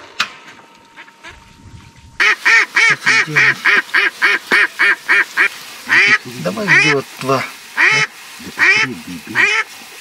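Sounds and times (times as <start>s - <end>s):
loud duck quacks: 2.2s - 7.1s, 7.8s - 9.7s.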